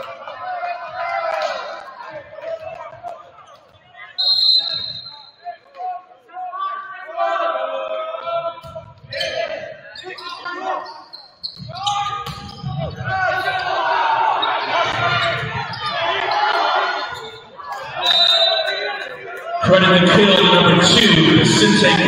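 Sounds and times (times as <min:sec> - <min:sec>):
people shouting and cheering: 0:00.0 - 0:11.0, 0:11.7 - 0:22.0
volleyball ball contacts: 0:11.5 - 0:13.7.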